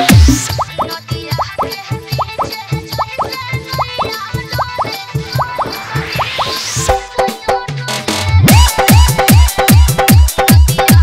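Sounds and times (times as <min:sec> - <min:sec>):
percussion: 0:00.0 - 0:11.0.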